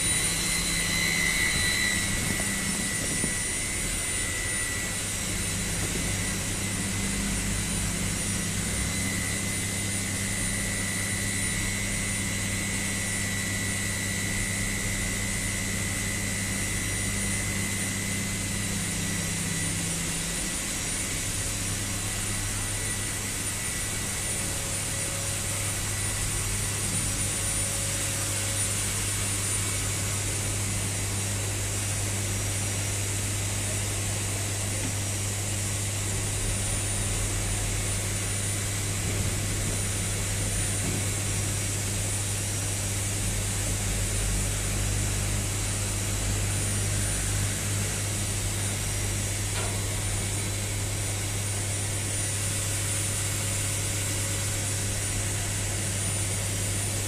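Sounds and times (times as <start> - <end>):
high machinery whine: 0.0 - 57.0
low machinery hum: 0.0 - 57.0.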